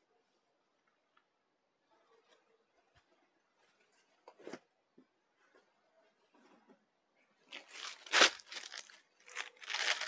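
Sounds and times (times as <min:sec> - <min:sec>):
fabric crinkling and rustling: 0:07.4 - 0:10.0.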